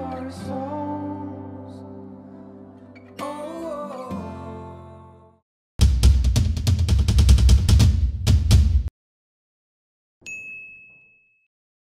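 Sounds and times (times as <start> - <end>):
bell-like ding: 10.2 - 11.5.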